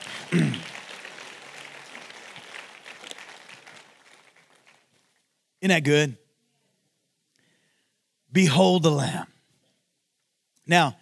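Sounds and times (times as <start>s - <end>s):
congregation applauding: 0.0s - 5.3s.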